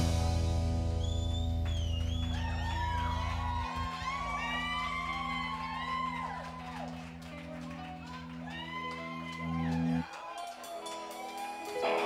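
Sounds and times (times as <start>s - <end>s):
audience cheering and whooping: 0.3s - 12.0s.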